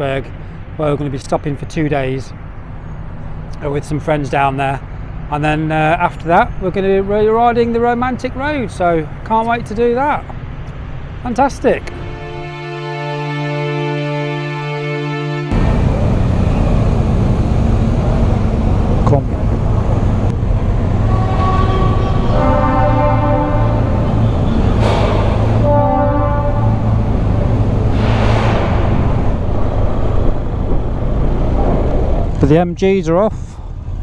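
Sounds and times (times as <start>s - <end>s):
horn-like tones: 11.6s - 16.8s, 20.7s - 29.2s
music: 11.8s - 15.6s
motorcycle engine rumble: 15.5s - 34.0s.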